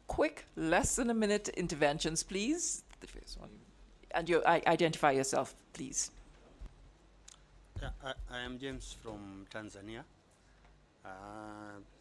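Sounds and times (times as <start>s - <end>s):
man speaking: 7.8s - 10.1s, 11.1s - 12.0s.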